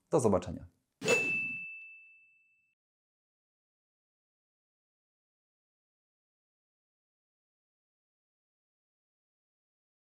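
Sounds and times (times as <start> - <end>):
high ringing ding: 1.0 - 2.8.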